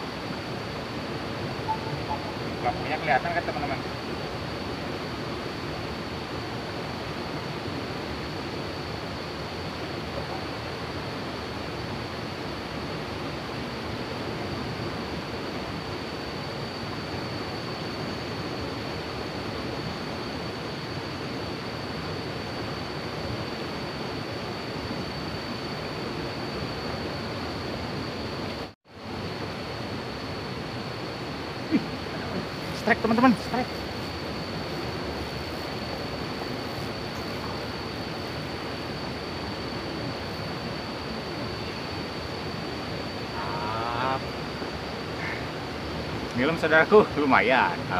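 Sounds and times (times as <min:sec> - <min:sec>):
thin high tone: 0:01.6 - 0:03.9.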